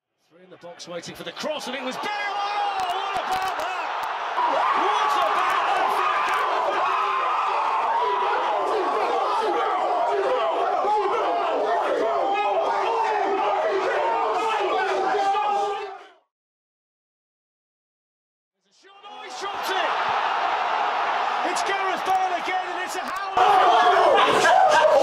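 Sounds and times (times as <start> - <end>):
young men shouting and cheering: 1.4 - 16.2, 18.8 - 25.0.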